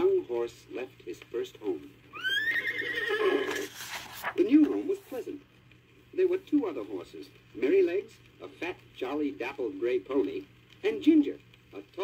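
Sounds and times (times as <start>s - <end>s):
horse whinnying: 2.1s - 3.8s.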